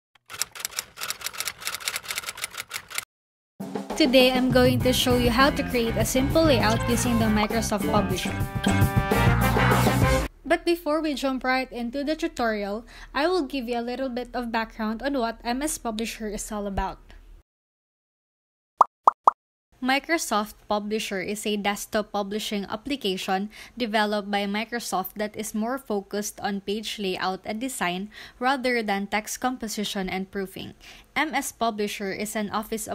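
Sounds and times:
typewriter keystrokes: 0.2s - 3.1s
pop sound effects falling in pitch: 18.8s - 19.4s.

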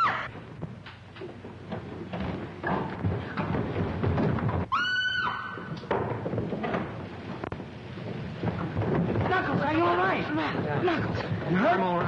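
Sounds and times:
woman screaming: 4.7s - 5.6s.

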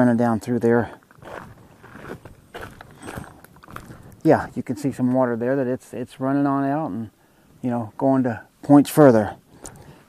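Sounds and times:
footsteps on rocky ground: 1.0s - 4.5s
dry grass and brush rustling: 1.0s - 5.4s.

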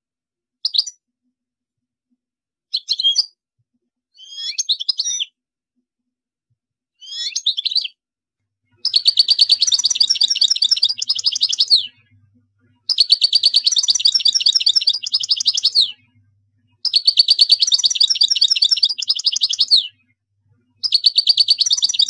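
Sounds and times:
goldfinch singing: 7.0s - 7.9s, 8.8s - 20.2s, 20.8s - 22.0s.

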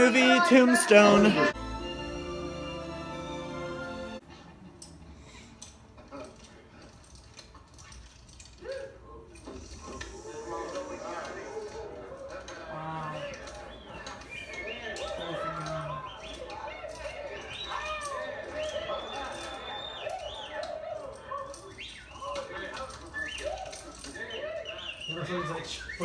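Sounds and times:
crowd voices: 0.0s - 4.7s, 8.4s - 26.0s
film dialogue from television: 0.0s - 26.0s.

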